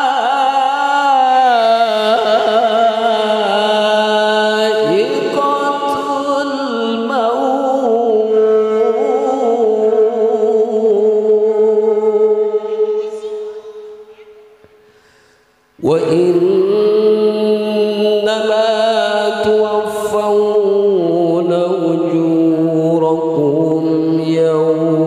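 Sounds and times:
man reciting melodically: 0:00.0 - 0:14.2, 0:15.7 - 0:25.0.

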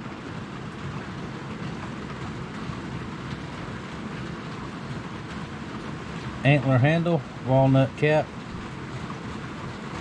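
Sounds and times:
steady rain: 0:00.0 - 0:10.0.

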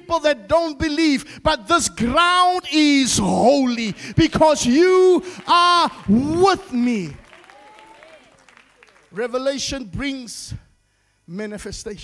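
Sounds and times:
man speaking into a microphone: 0:00.0 - 0:07.2, 0:09.1 - 0:10.7, 0:11.3 - 0:12.0
congregation applauding: 0:03.4 - 0:09.8.

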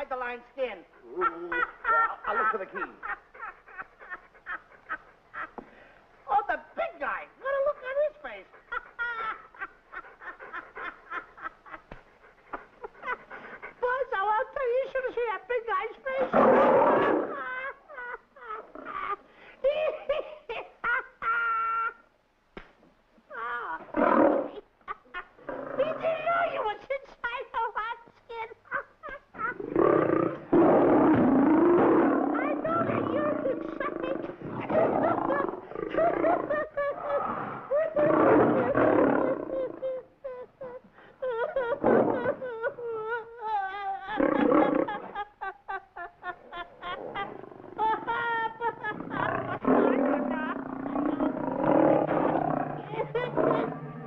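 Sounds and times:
man giggling: 0:01.0 - 0:05.6, 0:39.3 - 0:49.7
lion roaring and growling: 0:16.2 - 0:17.4, 0:23.8 - 0:24.6, 0:29.5 - 0:39.9, 0:44.2 - 0:45.2, 0:48.8 - 0:54.0.

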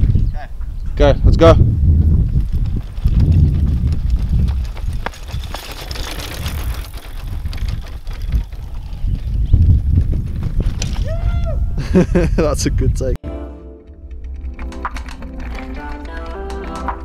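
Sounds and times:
wind rumble on microphone: 0:00.0 - 0:13.2
bike rolling over dirt road: 0:01.8 - 0:11.2.

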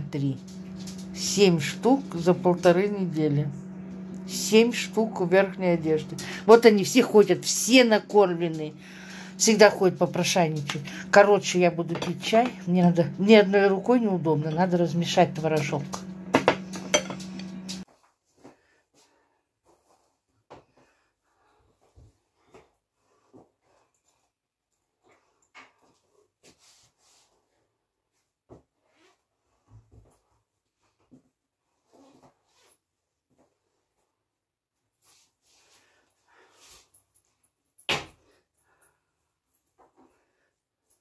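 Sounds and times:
person speaking: 0:00.0 - 0:17.8.

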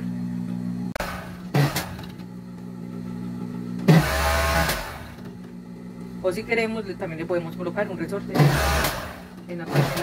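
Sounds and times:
overlock machine motor humming: 0:00.0 - 0:10.0
sewing machine stitching: 0:08.4 - 0:10.0.

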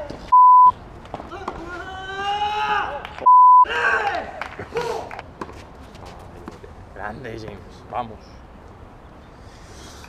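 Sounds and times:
censor bleep: 0:00.3 - 0:00.7, 0:03.3 - 0:03.7
man shouting: 0:01.4 - 0:03.0.

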